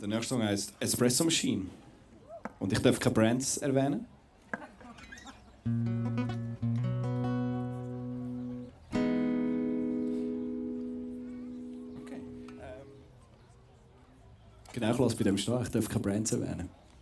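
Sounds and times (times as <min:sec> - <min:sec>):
acoustic guitar chords strummed: 0:05.7 - 0:13.0.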